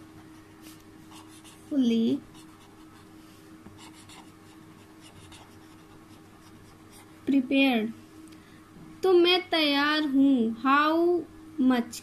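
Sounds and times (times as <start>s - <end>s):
pen scratching on paper: 1.1s - 1.7s, 3.8s - 7.1s.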